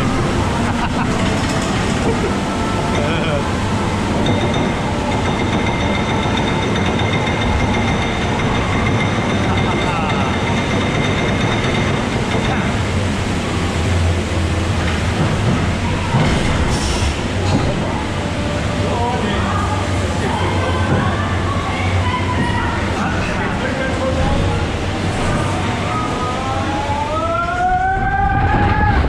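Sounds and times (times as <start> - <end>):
water ride boat rumbling: 0.0 - 29.0.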